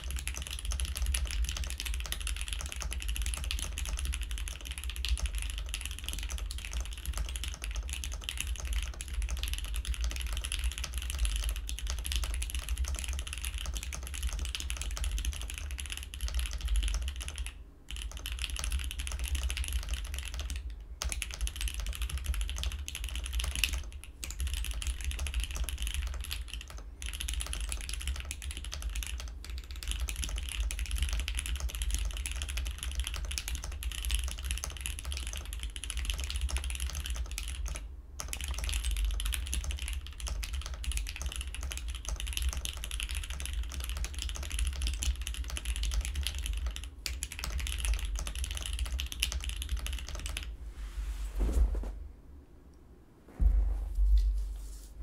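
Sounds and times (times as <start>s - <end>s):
fast typing on mechanical keyboard: 0.0s - 50.5s.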